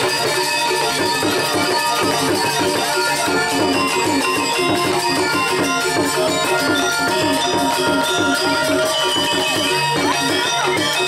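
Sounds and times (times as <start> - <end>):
gamelan metallophones playing: 0.0 - 11.0.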